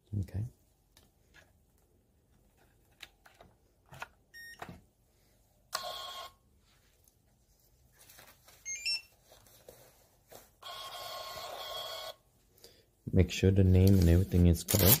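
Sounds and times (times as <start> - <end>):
card terminal beep: 4.4 - 4.7, 8.7 - 9.1.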